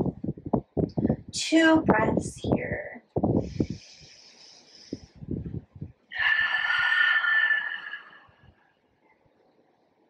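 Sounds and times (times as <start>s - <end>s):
person breathing through nose: 3.4s - 5.2s.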